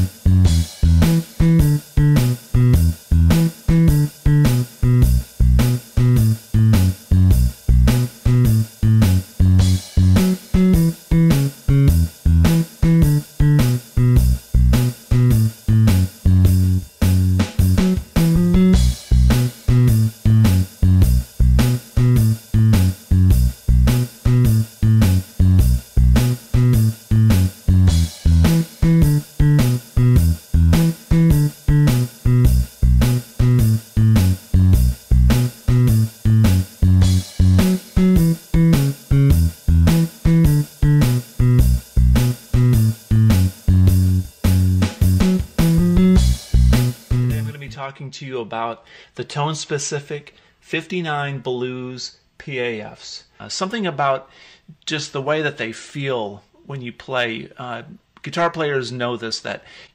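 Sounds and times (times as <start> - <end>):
drum beat: 0.0 - 47.6
electric bass line: 0.0 - 47.7.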